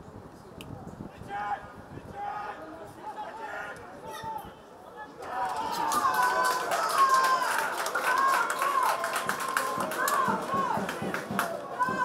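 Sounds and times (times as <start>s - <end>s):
open-air stadium ambience: 0.0s - 12.0s
players shouting calls: 1.2s - 12.0s.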